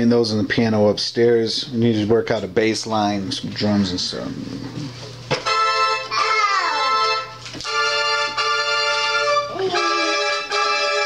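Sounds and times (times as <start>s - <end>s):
electronic keyboard organ chords: 3.9s - 11.0s.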